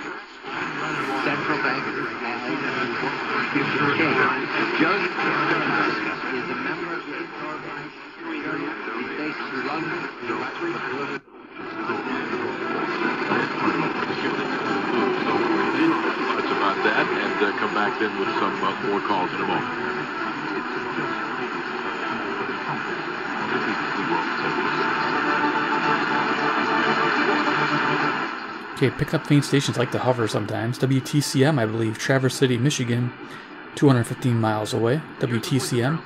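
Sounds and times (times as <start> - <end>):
speech from am radio speaker: 0.0 - 36.0.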